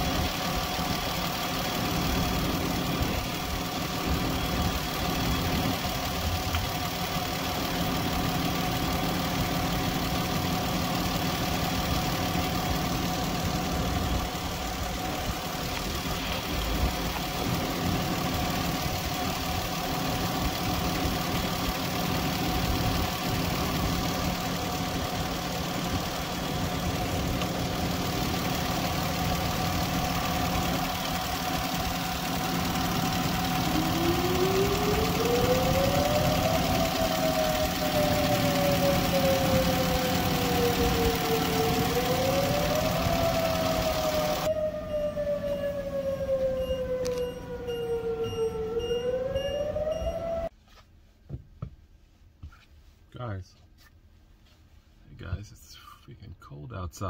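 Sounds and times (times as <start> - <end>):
engine idling: 0.0 - 44.5
rising and falling whine: 7.7 - 50.5.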